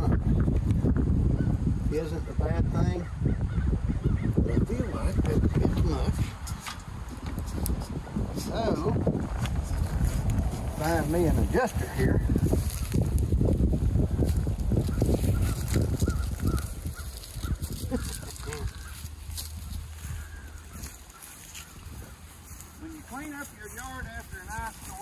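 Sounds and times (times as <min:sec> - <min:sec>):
low rumbling: 0:00.0 - 0:24.8.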